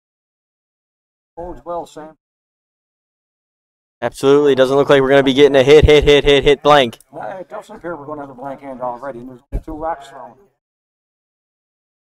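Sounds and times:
person speaking: 4.0s - 10.6s.

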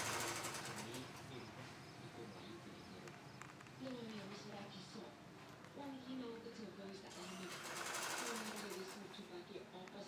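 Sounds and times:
sewing machine stitching: 0.0s - 1.1s, 7.1s - 9.1s.

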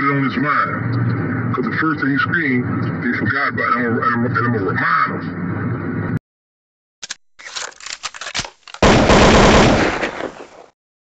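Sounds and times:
loud burst of rapid crackling: 8.8s - 10.5s.

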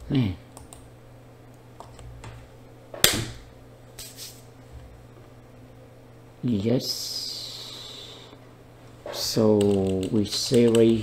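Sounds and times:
faint brushing sounds: 4.0s - 4.5s.

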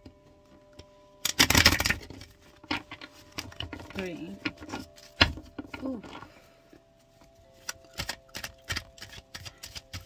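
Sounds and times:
cards being shuffled: 7.6s - 10.0s.

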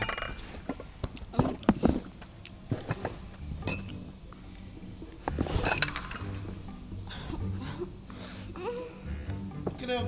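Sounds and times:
background music: 2.4s - 10.0s
teacups and saucers clinking: 2.9s - 4.0s, 5.6s - 6.5s.

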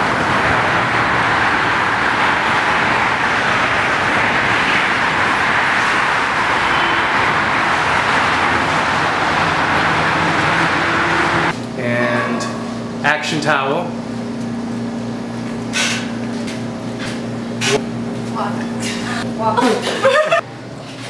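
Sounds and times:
passing cars rushing: 0.0s - 11.6s.

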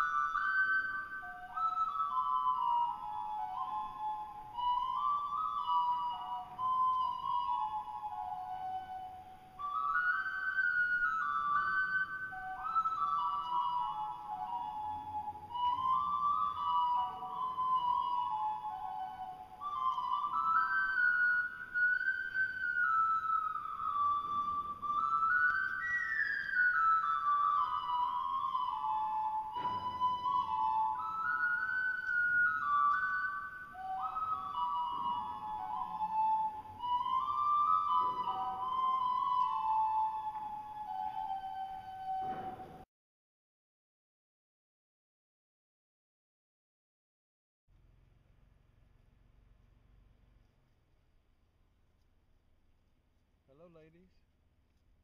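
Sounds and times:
ocarina playing slow melody: 0.0s - 42.8s.

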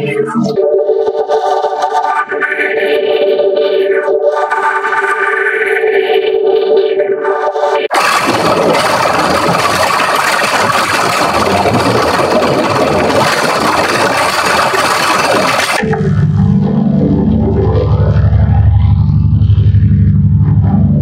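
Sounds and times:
harsh distorted noise wash: 0.0s - 21.0s
deep buzzing drone: 7.4s - 21.0s.

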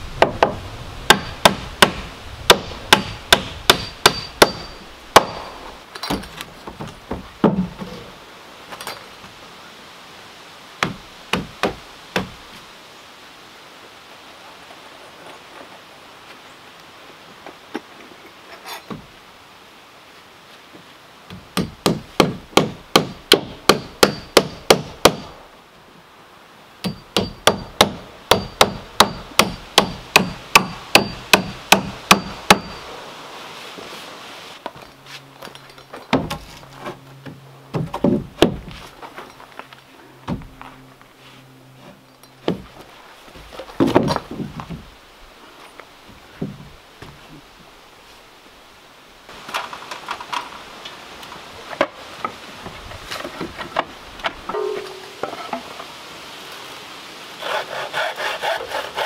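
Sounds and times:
hammer striking wood: 0.2s - 5.5s, 21.6s - 25.3s, 26.8s - 32.8s.

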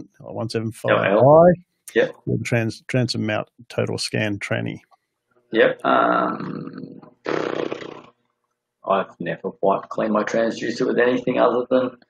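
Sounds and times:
man making wordless vocal sound: 0.0s - 4.8s, 5.6s - 7.2s.

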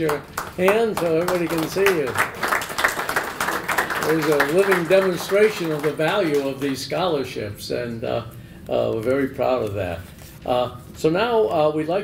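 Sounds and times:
audience applauding: 0.0s - 6.9s.

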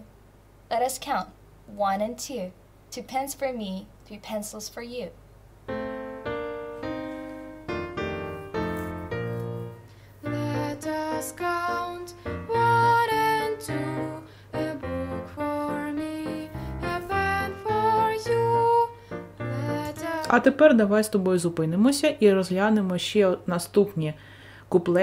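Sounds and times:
children's song on piano: 5.7s - 20.7s.

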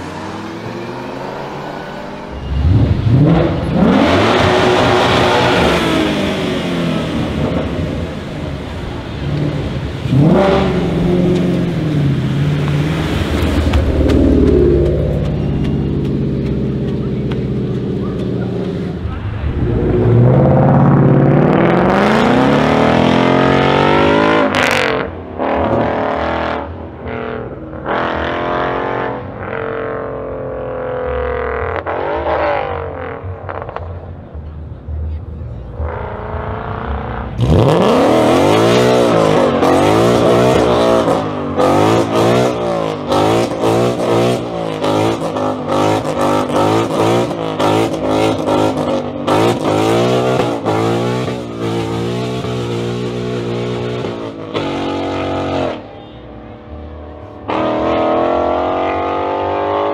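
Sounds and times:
car engines revving and accelerating: 0.0s - 59.9s.

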